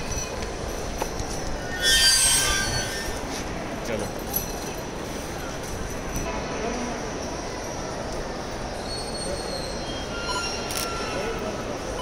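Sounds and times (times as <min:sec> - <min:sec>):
busy background noise: 0:00.0 - 0:12.0
high-pitched metallic squeal: 0:01.6 - 0:03.5, 0:08.8 - 0:12.0.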